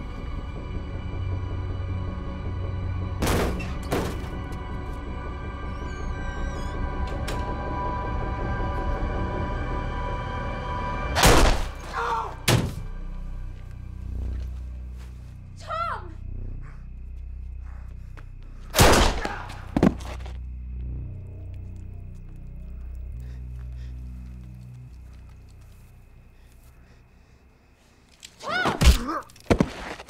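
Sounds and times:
tense film score held tones: 0:00.0 - 0:29.5.

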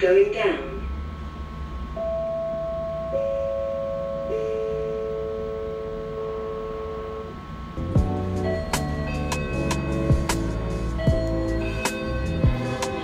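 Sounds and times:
low hum: 0:00.0 - 0:13.0
electronic tones: 0:01.9 - 0:07.4, 0:08.1 - 0:13.0.

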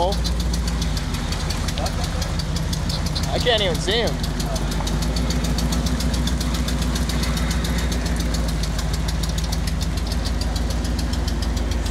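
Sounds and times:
rapid even ticking: 0:00.0 - 0:11.9
truck engine running low: 0:00.0 - 0:11.9.

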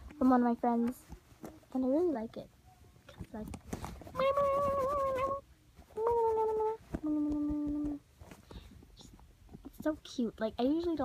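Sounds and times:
girl singing wordless notes: 0:04.0 - 0:08.1.

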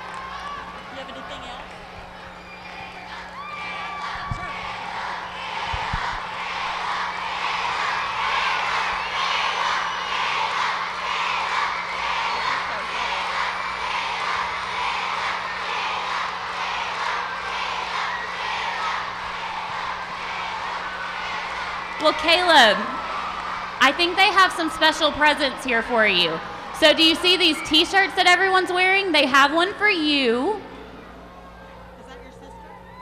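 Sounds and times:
children clapping: 0:00.0 - 0:02.3
children cheering: 0:00.0 - 0:29.1, 0:30.8 - 0:33.0.

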